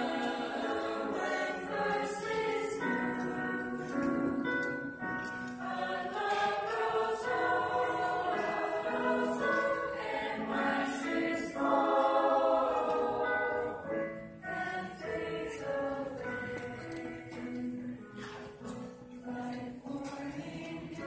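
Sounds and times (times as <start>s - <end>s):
mixed choir singing in harmony: 0.0s - 21.0s.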